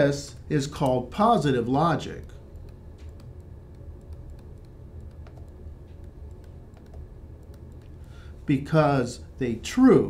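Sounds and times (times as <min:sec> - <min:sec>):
low steady hum: 0:00.0 - 0:10.0
stylus tapping on pen tablet: 0:02.6 - 0:08.0.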